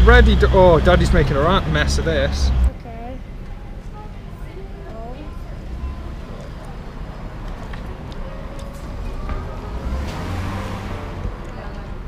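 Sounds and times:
vehicle passing: 0.0s - 2.8s, 5.2s - 12.0s
low steady street rumble: 0.0s - 12.0s
faint distant voices: 0.2s - 12.0s.

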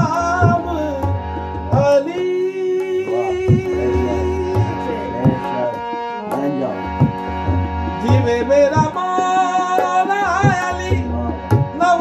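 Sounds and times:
harmonium: 0.0s - 12.0s
tabla strokes: 0.0s - 12.0s
man singing long note: 2.4s - 5.8s.

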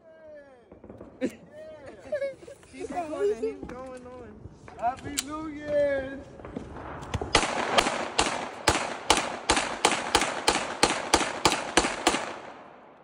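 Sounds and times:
handgun shots echoing: 7.0s - 13.0s.

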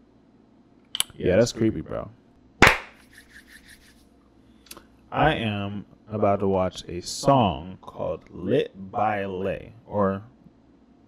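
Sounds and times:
sharp whip-like hit: 2.6s - 3.3s.

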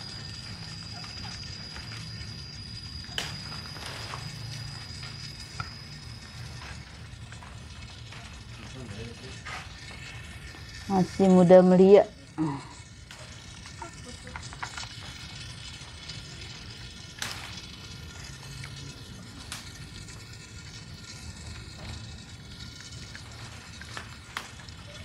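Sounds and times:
water trickling into plastic bucket: 3.4s - 25.0s.

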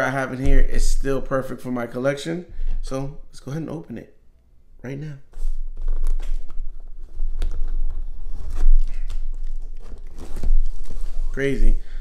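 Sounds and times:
packaging tearing and crinkling: 5.8s - 11.2s.

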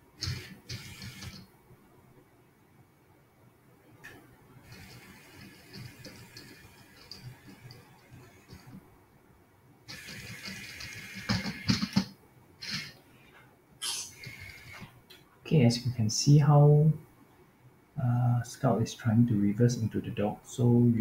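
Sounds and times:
robot wheel motors whirring: 0.2s - 1.4s, 4.6s - 8.8s, 9.9s - 13.0s, 14.0s - 14.9s.

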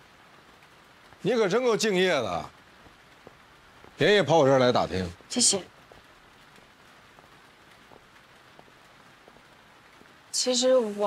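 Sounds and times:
faint steady rain: 0.0s - 11.0s.

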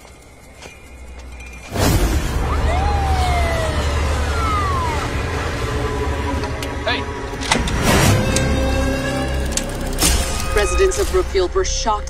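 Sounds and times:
vehicle sounds: 0.0s - 11.4s.

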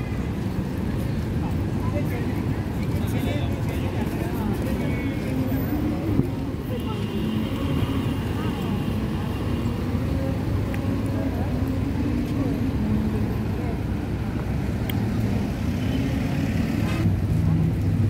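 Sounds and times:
chatter of passers-by: 0.0s - 18.0s
low traffic hum: 0.0s - 18.0s.

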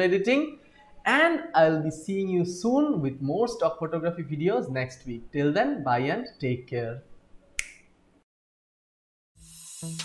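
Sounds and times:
finger snap: 7.6s - 7.9s.

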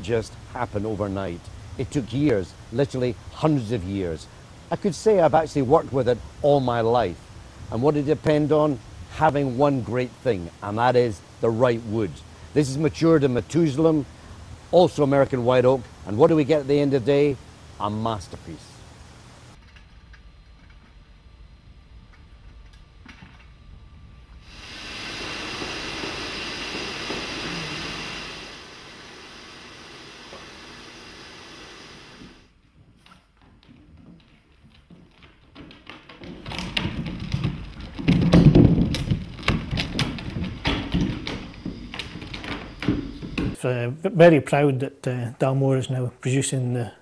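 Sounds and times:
steady hiss: 0.0s - 19.6s, 24.0s - 32.5s
knocks and heavy thuds: 35.8s - 43.6s.

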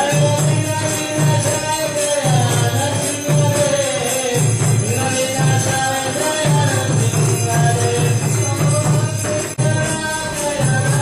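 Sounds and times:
drum beat: 0.0s - 11.0s
jingling metal percussion: 0.0s - 11.0s.

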